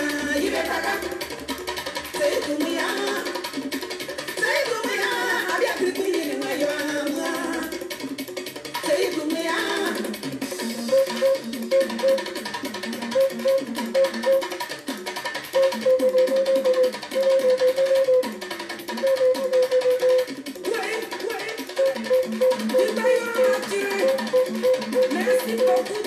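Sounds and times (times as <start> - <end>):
light percussion: 0.0 - 26.0.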